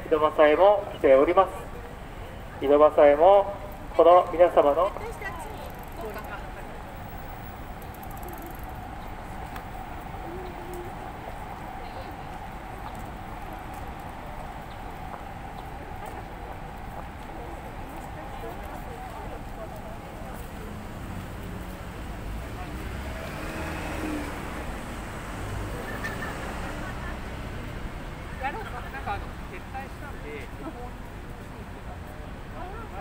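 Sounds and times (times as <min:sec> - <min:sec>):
street background noise: 0:00.0 - 0:33.0
traffic rumble: 0:00.0 - 0:33.0.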